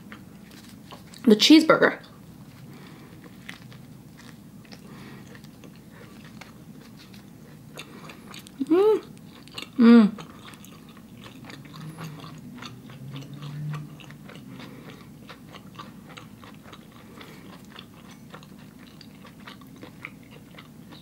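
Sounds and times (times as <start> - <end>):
close-miked chewing: 0.0 - 1.3, 2.0 - 21.0
person humming mm: 8.6 - 9.1, 9.8 - 10.3.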